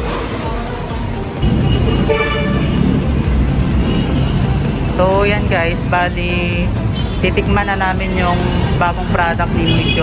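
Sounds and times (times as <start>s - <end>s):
road traffic rumble: 0.0s - 10.0s
car horn toot: 1.4s - 2.9s, 9.6s - 10.0s.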